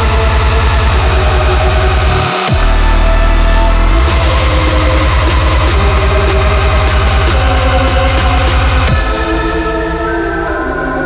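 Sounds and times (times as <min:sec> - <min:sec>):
distorted pulsing bass: 0:00.0 - 0:10.9.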